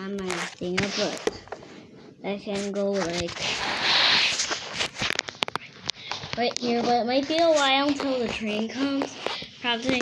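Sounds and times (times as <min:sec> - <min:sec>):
camera rubbing on carpet: 0:00.3 - 0:01.3, 0:02.4 - 0:05.3.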